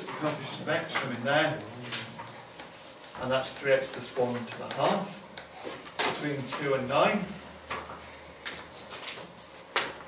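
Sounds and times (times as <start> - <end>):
man speaking: 0.0 - 2.2, 3.2 - 5.3, 6.2 - 7.4.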